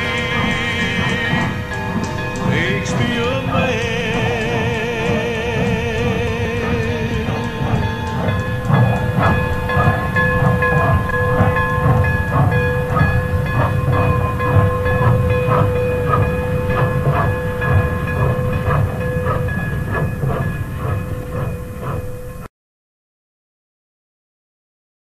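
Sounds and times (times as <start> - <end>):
heavy rumble: 0.0 - 22.5
steady held tones: 0.0 - 22.5
steam locomotive exhaust beating: 0.0 - 22.5.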